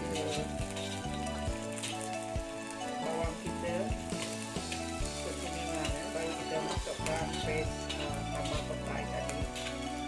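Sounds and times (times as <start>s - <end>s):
background music with steady beat: 0.0s - 10.0s
vegetables sizzling in hot oil: 0.0s - 10.0s.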